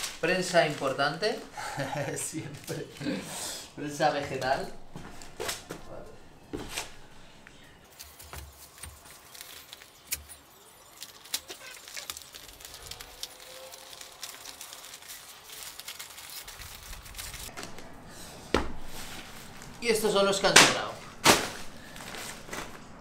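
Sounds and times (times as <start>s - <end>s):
newspaper rustling and crinkling: 0.0s - 3.0s, 7.9s - 23.0s.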